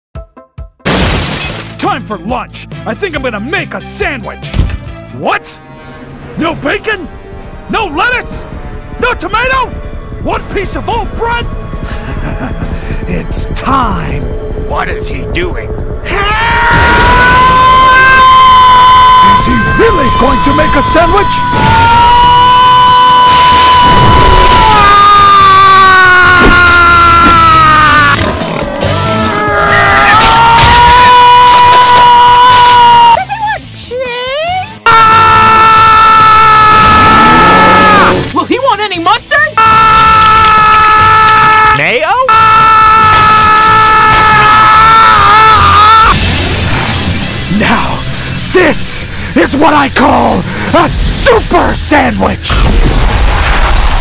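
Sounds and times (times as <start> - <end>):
anime character power-up scream: 16.1 - 28.2, 28.9 - 33.2, 34.9 - 38.2, 39.6 - 46.2
loud crash: 23.1 - 24.7, 52.5 - 54.0.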